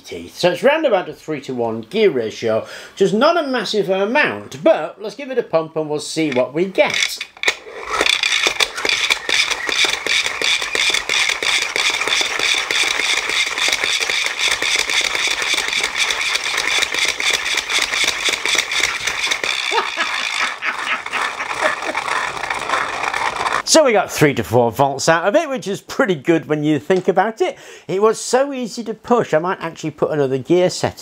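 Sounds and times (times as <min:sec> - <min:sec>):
fast ratchet clicking: 0:06.9 - 0:23.7
whirring hum: 0:07.1 - 0:23.7.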